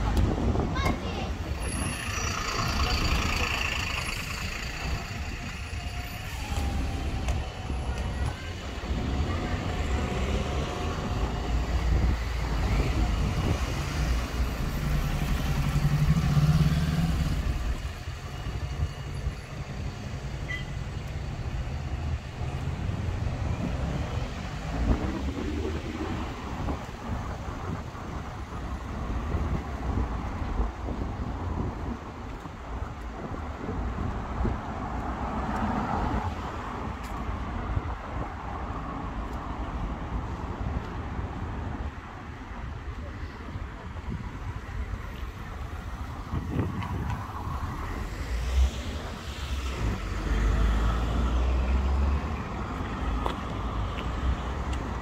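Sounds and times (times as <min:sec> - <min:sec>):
bus diesel engine running: 0:00.0 - 0:20.4
cars passing: 0:00.0 - 0:55.0.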